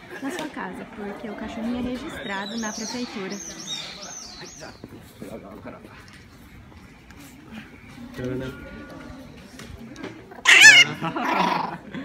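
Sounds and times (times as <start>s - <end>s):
dog yelping: 10.4s - 11.0s.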